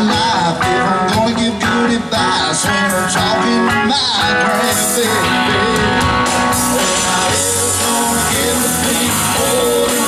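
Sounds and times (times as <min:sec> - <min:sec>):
drums: 0:00.0 - 0:10.0
electric guitar: 0:00.0 - 0:10.0.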